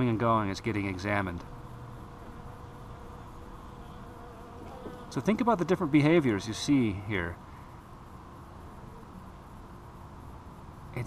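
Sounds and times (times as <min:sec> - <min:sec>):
bees buzzing: 0:00.0 - 0:09.6.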